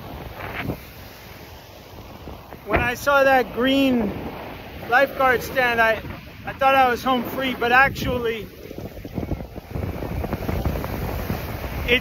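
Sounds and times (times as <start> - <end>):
ocean surf washing: 0.0 - 12.0
wind buffeting microphone: 0.0 - 12.0.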